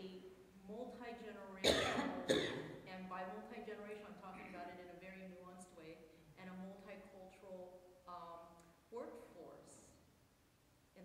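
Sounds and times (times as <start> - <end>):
woman speaking: 0.0 - 10.0
person coughing: 1.6 - 2.8.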